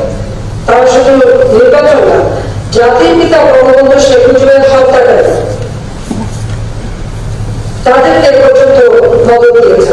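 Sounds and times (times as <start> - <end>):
woman speaking into a microphone: 0.0 - 6.4, 7.8 - 9.9
low background hum: 0.0 - 9.9.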